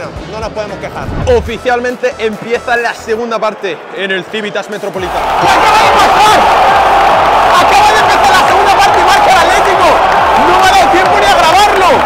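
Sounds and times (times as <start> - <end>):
stadium crowd shouting and cheering: 1.1 - 12.0.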